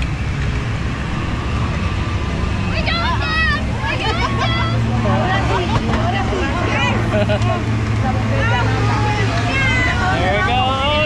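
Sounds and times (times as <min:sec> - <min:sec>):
people talking: 0:02.7 - 0:11.0.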